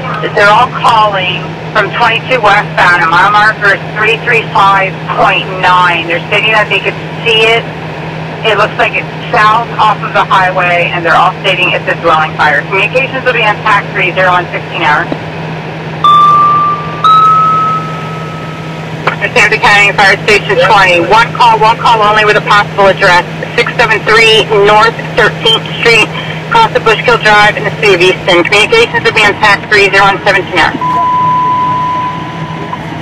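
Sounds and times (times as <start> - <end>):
two-tone radio page: 0.0 - 7.6, 8.5 - 15.2, 19.0 - 32.9
low steady rumble: 0.0 - 33.0
steady low hum: 0.0 - 33.0
radio hiss: 19.0 - 31.0.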